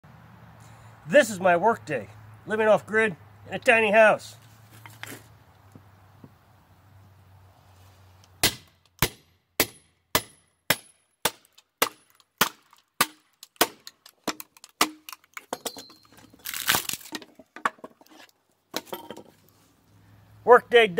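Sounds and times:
sledgehammer striking hatchet: 8.4 - 15.7
wood cracking and splitting: 11.2 - 15.5, 16.1 - 18.1.

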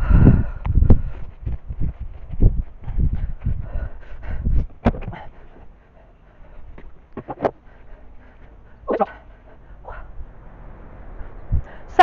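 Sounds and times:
low rumbling: 0.0 - 12.0.

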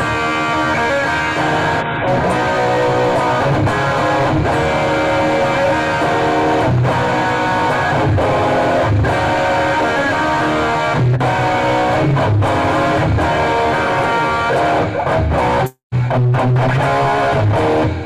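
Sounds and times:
electric guitar through amplifier: 0.0 - 18.0.

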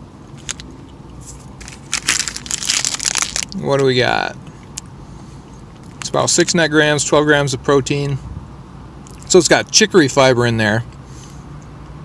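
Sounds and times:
plastic wrapper crinkling: 1.6 - 3.6.

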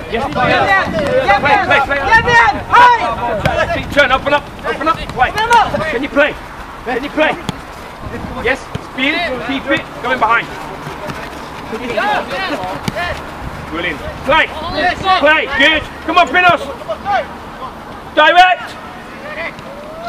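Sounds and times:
players shouting: 0.0 - 20.0.

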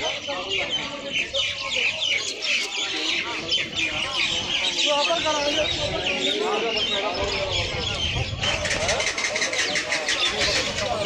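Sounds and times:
birds chirping: 0.0 - 11.0
murmur of voices: 0.0 - 11.0.

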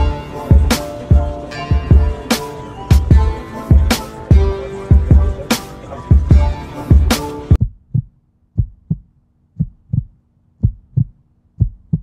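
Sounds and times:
hip-hop beat: 0.0 - 9.0
low double thumps: 6.2 - 12.0.

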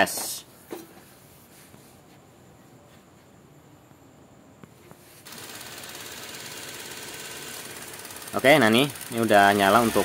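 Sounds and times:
car engine starting and running: 8.2 - 10.0.

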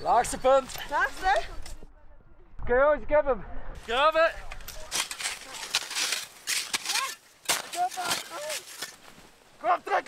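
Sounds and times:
shovels digging into packed snow: 4.8 - 9.2.

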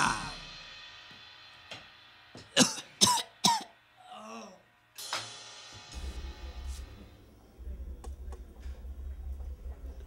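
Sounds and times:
man making rasping cough-like bursts: 2.5 - 3.8.

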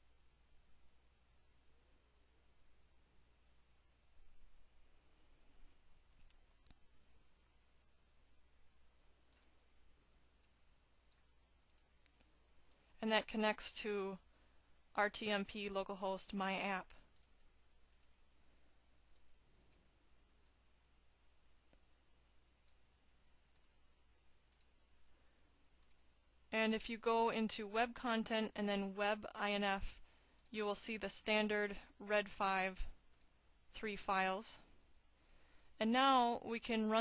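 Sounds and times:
low steady hum: 0.0 - 37.0
computer mouse clicks: 6.0 - 7.3, 9.3 - 9.6, 10.4 - 12.9, 17.0 - 18.2, 19.1 - 20.6, 22.6 - 23.8, 24.5 - 24.8, 25.8 - 26.0, 33.1 - 33.4.

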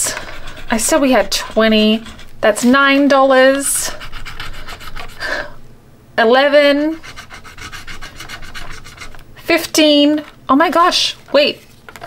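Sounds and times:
pencil scribbling on paper: 0.0 - 5.6, 6.8 - 9.2.

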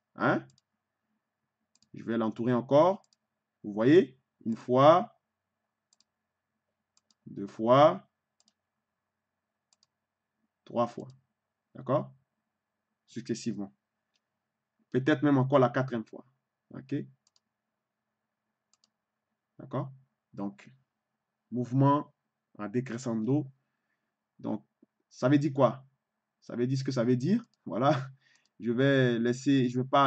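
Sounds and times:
computer mouse clicks: 0.4 - 0.7, 1.7 - 2.0, 2.9 - 3.3, 5.9 - 6.2, 7.0 - 7.3, 8.4 - 8.6, 9.7 - 10.0, 11.0 - 11.2, 17.2 - 17.5, 18.7 - 19.0, 27.4 - 27.7.

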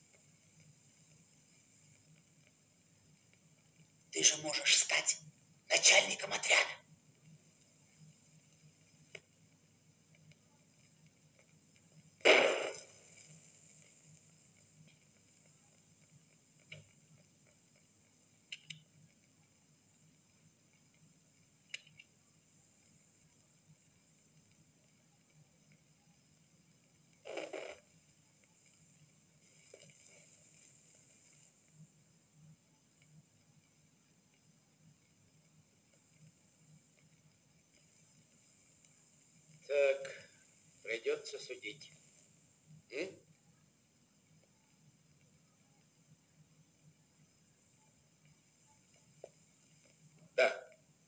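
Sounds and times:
film soundtrack hiss and hum: 0.0 - 51.0
faint clicks: 7.1 - 9.5, 10.1 - 41.1, 41.8 - 51.0.

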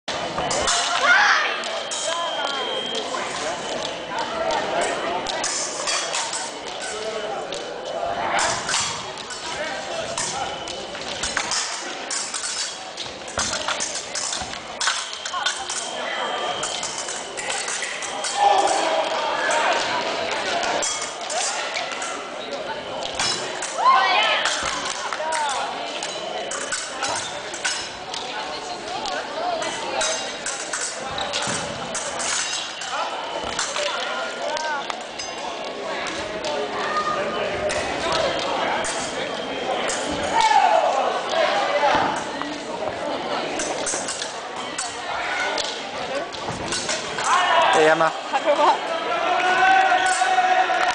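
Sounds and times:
people's voices: 0.1 - 50.9
fencing blades clashing: 0.4 - 36.6, 37.6 - 42.6, 43.4 - 48.5, 49.7 - 50.9.

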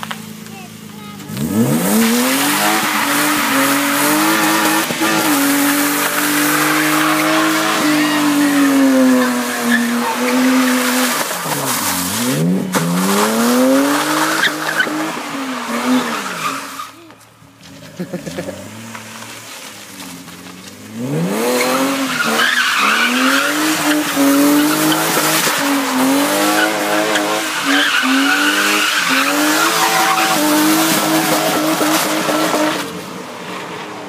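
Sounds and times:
car engine at high revs: 0.0 - 34.0
tyres squealing: 2.0 - 17.3, 21.5 - 32.8.

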